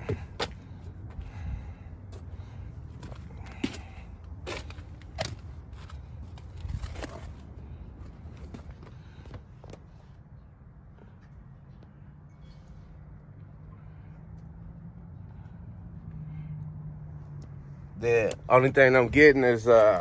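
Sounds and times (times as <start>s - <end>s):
footsteps on gravel: 2.9s - 9.4s.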